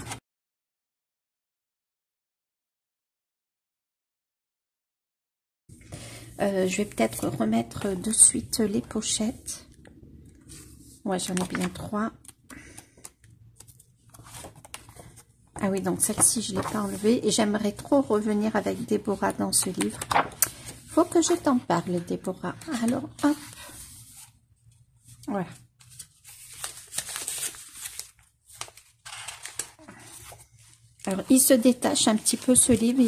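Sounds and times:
paper rustling: 10.4 - 33.0.

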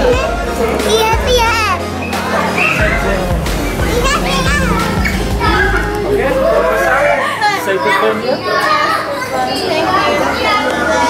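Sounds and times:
background music: 0.0 - 8.4
adults' voices: 0.0 - 11.0
children chattering excitedly: 0.0 - 11.0.

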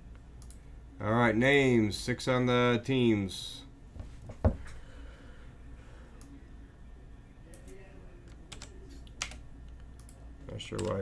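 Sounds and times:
computer keyboard keystrokes: 7.6 - 11.0.

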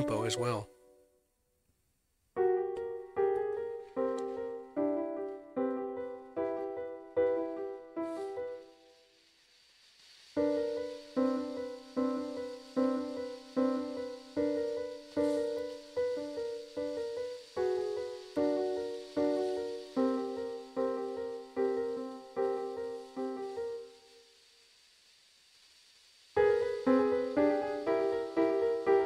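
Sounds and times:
piano block chords: 0.0 - 1.0, 2.4 - 8.7, 10.4 - 23.9, 26.4 - 29.0.

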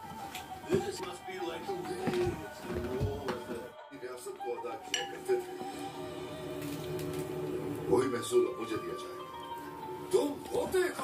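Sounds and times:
background music: 0.0 - 11.0
plates and cutlery clinking: 4.9 - 5.4.

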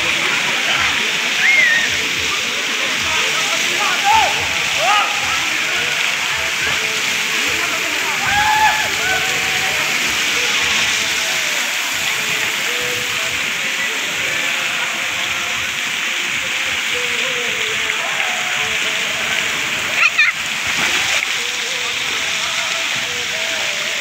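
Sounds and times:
faint children's voices: 0.0 - 7.0, 19.8 - 21.4
water pouring and spraying: 0.0 - 24.0.

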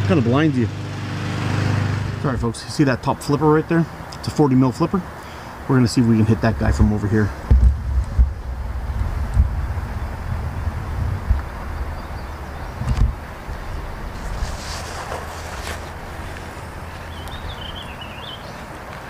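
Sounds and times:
wind buffeting microphone: 6.4 - 18.3.

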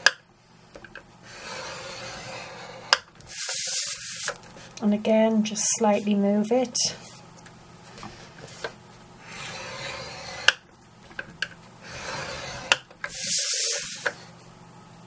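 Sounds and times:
stylus scraping cardstock: 1.3 - 4.7, 8.0 - 10.6, 11.8 - 14.3.

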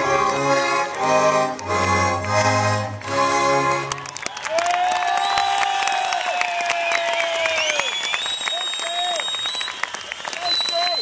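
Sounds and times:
fiddle and accordion folk tune: 0.0 - 4.2
audience applauding: 0.2 - 11.0
long drawn-out shout: 4.4 - 7.9
shrill whistles: 5.0 - 5.7, 6.8 - 11.0.

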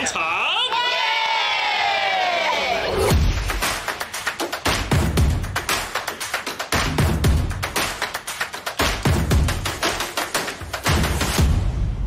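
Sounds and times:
children cheering: 0.5 - 3.1.

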